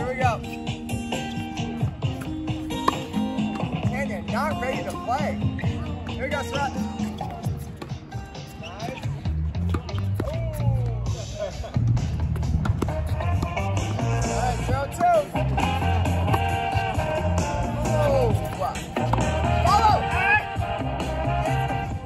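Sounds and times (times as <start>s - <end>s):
song with vocals and bass: 12.9s - 22.0s.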